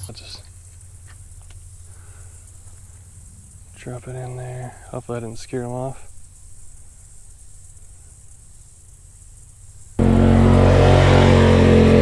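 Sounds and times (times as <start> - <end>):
low outdoor rumble: 10.0 - 12.0.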